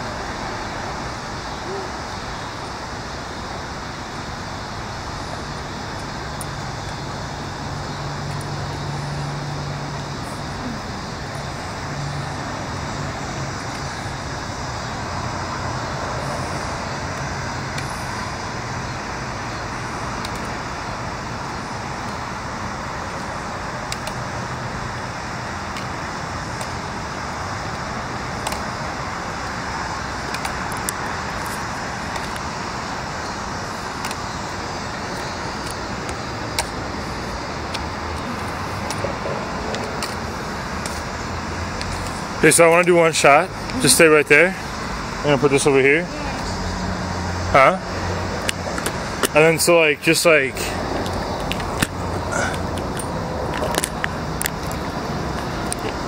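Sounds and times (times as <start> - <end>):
traffic noise: 0.0 - 56.0.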